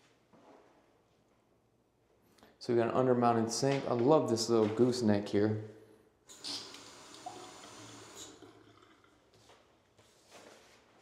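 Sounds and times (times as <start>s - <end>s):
faucet water running into sink: 6.3s - 9.1s.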